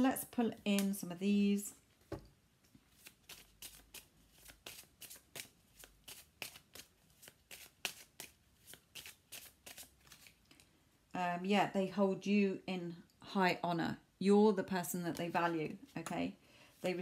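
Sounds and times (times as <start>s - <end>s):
cards shuffled by hand: 2.8s - 10.7s.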